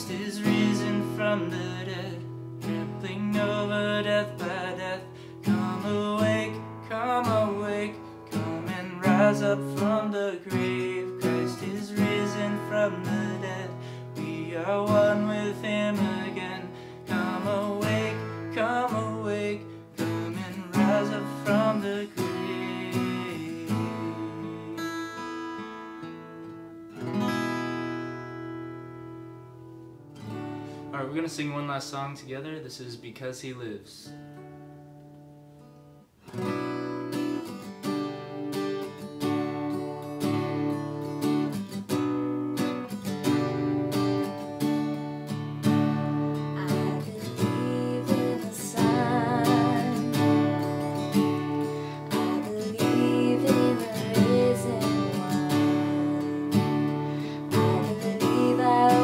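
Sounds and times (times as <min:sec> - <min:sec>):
man singing: 0:00.0 - 0:25.2, 0:46.6 - 0:59.0
acoustic guitar strumming: 0:00.0 - 0:32.9, 0:34.0 - 0:59.0.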